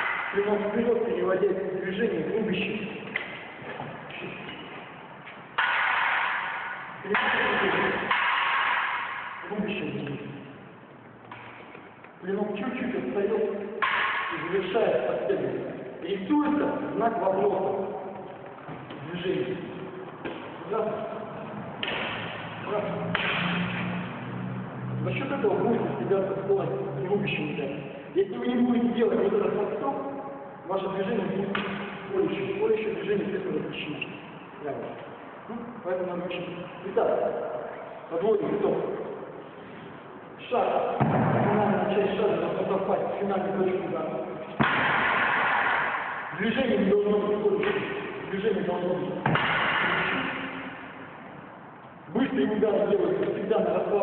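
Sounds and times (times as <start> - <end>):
practice swords striking: 0.0 - 0.8, 2.9 - 10.5, 13.6 - 15.8, 20.2 - 24.2, 44.5 - 48.4, 49.2 - 51.2
sharp sword impact echoing: 5.6 - 9.5, 13.8 - 14.6, 23.1 - 24.0.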